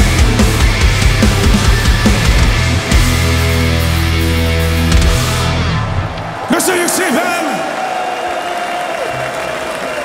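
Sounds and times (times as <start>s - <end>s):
audience cheering and whooping: 6.0s - 10.0s.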